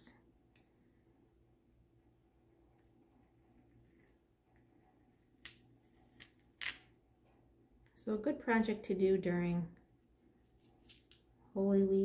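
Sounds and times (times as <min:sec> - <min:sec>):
tape peeling off paper: 0:05.3 - 0:06.9.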